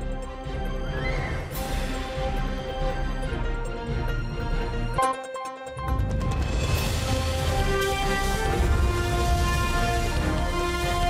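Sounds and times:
theme music with sustained tones: 0.0 - 11.0.

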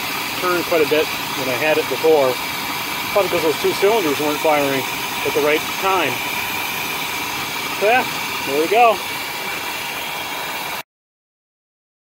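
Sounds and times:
car engine idling: 0.0 - 10.8.

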